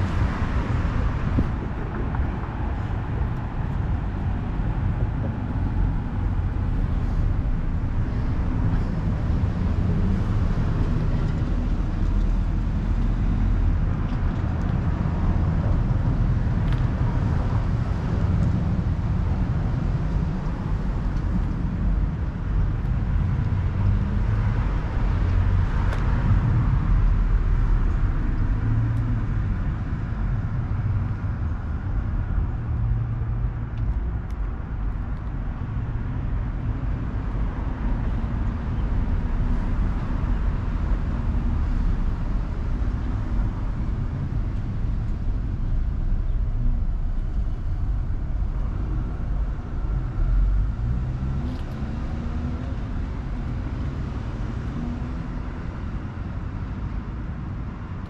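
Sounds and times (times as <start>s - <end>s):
low rumble of road traffic: 0.0s - 58.0s.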